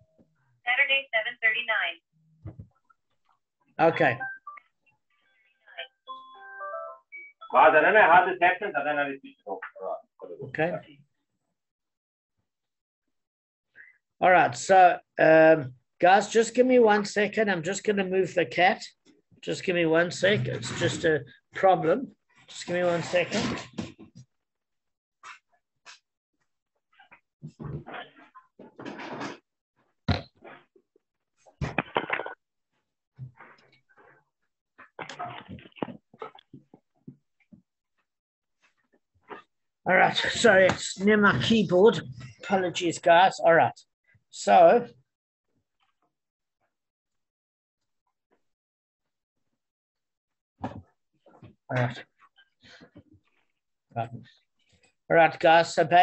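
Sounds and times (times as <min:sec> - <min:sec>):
person speaking over video call: 0:07.4 - 0:10.9, 0:14.2 - 0:24.0, 0:39.9 - 0:44.9, 0:51.7 - 0:52.1, 0:53.9 - 0:54.3, 0:55.1 - 0:56.0.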